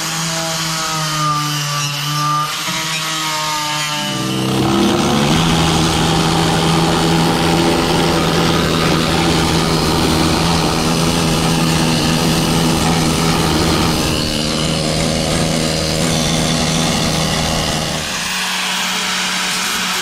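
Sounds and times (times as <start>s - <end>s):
angle grinder cutting: 0.0s - 20.0s
power tool droning hum: 0.0s - 20.0s.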